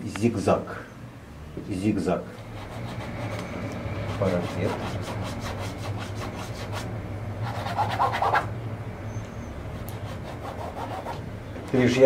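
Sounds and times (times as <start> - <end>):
low hum: 0.9 - 12.0
paintbrush scrubbing on canvas: 4.0 - 8.5, 9.7 - 11.2.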